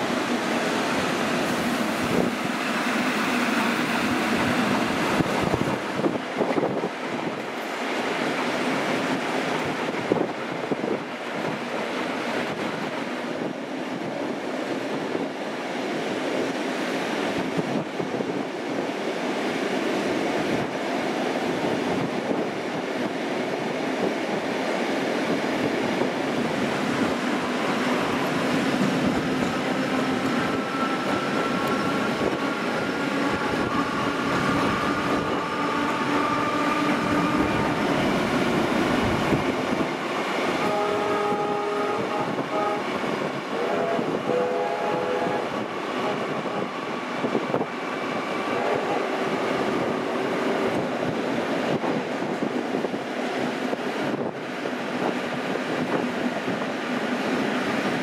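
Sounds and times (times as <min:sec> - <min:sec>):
train wheels on rail: 0:00.0 - 0:58.0
wind: 0:00.0 - 0:58.0
train whistle tooting: 0:40.6 - 0:42.9, 0:43.5 - 0:46.7, 0:48.5 - 0:49.6.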